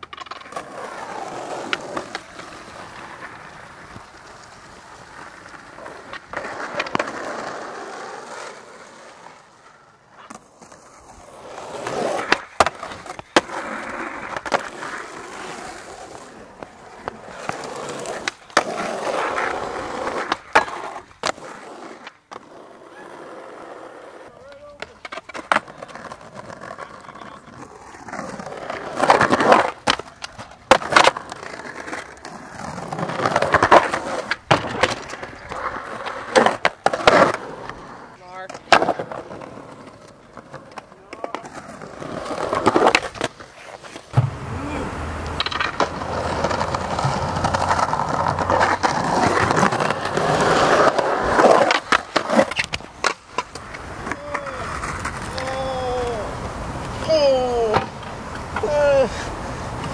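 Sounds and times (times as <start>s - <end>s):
skateboard wheels rolling on pavement: 0.0s - 59.9s
skateboards clacking: 0.0s - 59.9s.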